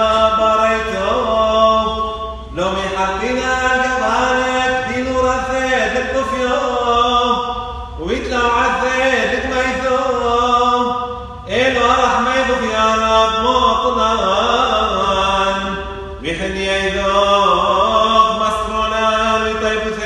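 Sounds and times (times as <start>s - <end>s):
voices singing liturgical chant: 0.0s - 20.0s.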